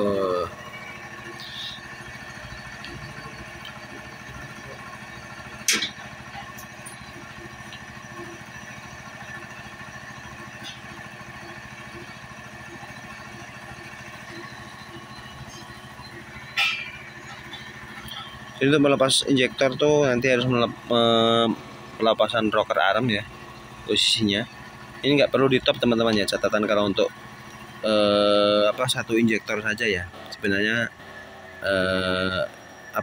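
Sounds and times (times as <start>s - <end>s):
machine hum: 0.0s - 33.0s.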